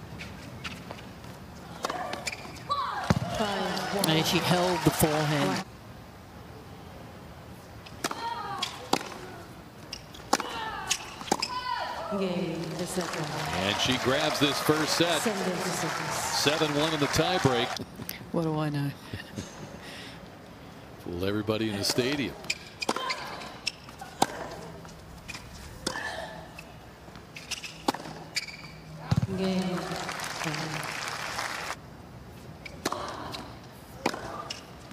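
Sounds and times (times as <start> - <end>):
tennis ball bouncing: 9.9 - 11.6, 27.4 - 28.5, 32.7 - 33.2, 34.0 - 34.6
racket hitting tennis ball: 10.2 - 11.6, 27.5 - 28.3, 34.0 - 34.6.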